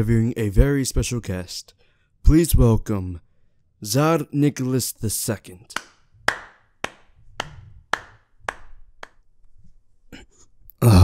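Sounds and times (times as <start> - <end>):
person clapping slowly: 5.7 - 9.2.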